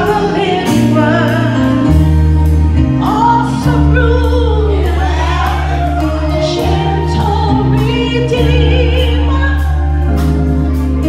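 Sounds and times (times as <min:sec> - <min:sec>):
worship team singing: 0:00.0 - 0:02.0, 0:03.0 - 0:10.0
instrumental accompaniment with beat: 0:00.0 - 0:11.0.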